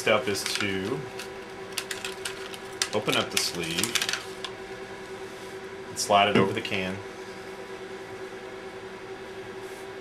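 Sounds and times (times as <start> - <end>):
faint steady hum: 0.0 - 10.0
plastic sleeve rustling: 0.3 - 4.5.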